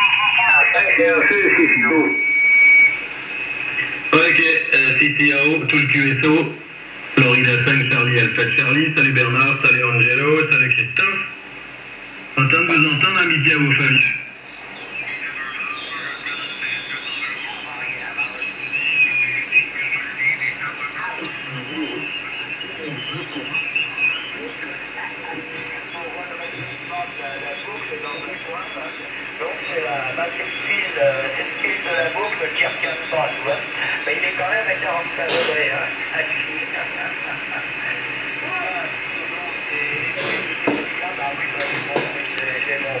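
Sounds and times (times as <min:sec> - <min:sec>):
garbled radio voices: 0:00.0 - 0:43.0
radio hiss: 0:00.0 - 0:43.0.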